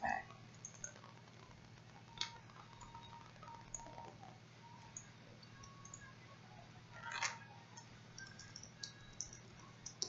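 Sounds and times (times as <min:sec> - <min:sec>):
low steady hum: 0:00.0 - 0:10.0
small clicks: 0:00.6 - 0:03.9.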